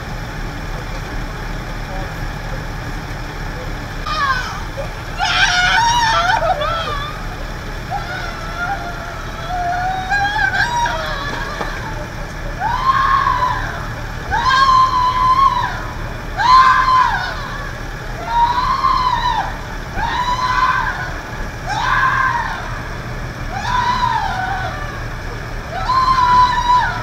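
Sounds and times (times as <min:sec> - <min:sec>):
person wailing: 0:04.0 - 0:22.9.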